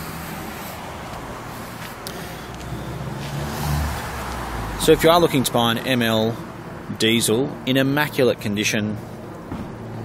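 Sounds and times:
low vehicle engine hum: 0.0s - 7.0s
background noise: 0.0s - 10.0s.

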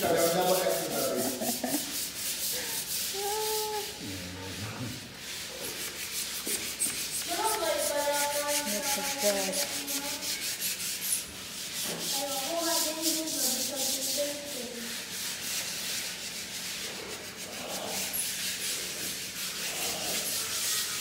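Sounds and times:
rubbing on hard surface: 0.0s - 21.0s.

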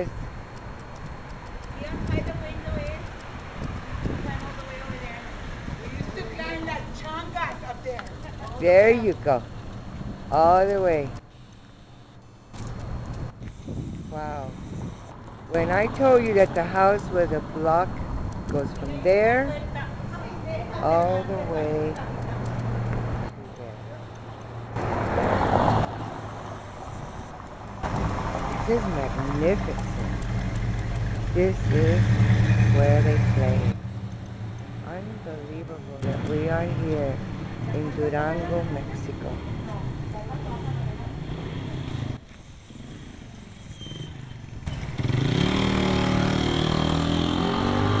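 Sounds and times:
faint street noise: 0.0s - 48.0s
motor vehicle engine accelerating: 24.4s - 48.0s.

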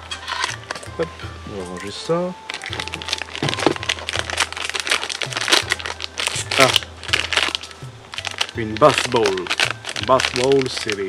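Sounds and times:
packet wrapping crinkling: 0.2s - 1.0s, 1.6s - 11.0s.

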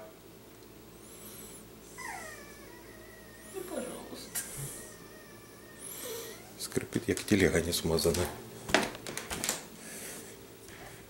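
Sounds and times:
dog whining: 1.8s - 6.7s.

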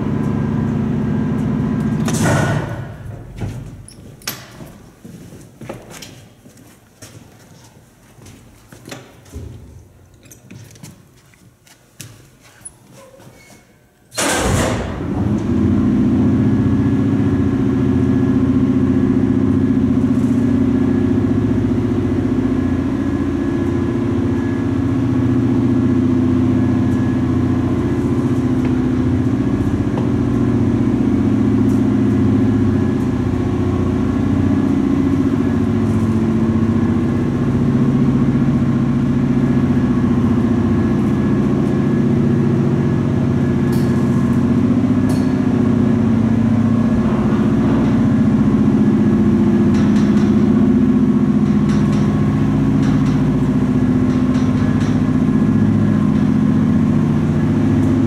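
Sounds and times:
elevator motor hum: 0.0s - 4.2s, 14.1s - 58.0s.

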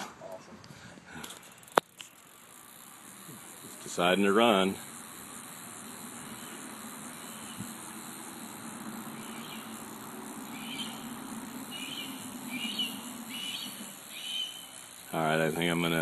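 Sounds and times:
high-pitched insect drone: 1.2s - 16.0s.

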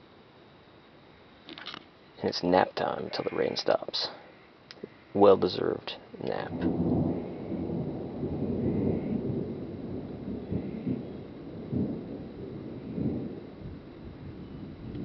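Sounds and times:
thunder rumbling: 5.1s - 15.0s.

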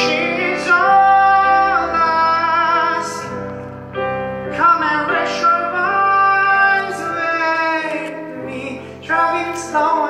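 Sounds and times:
man singing a long high note: 0.0s - 3.4s, 4.5s - 10.0s
instrumental accompaniment: 0.0s - 10.0s.

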